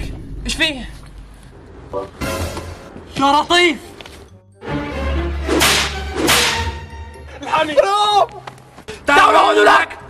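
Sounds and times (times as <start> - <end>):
low music: 2.0 - 7.8
whip swishing and cracking: 5.5 - 6.7.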